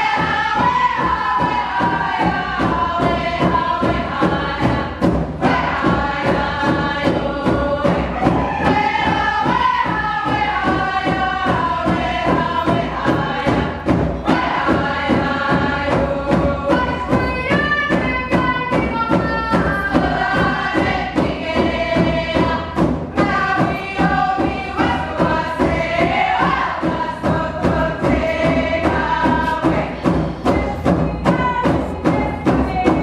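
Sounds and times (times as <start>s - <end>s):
steady drum beat: 0.0s - 33.0s.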